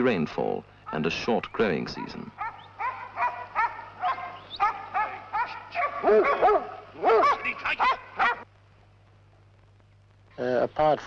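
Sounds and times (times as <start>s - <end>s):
dogs barking in short high barks: 2.0s - 8.4s.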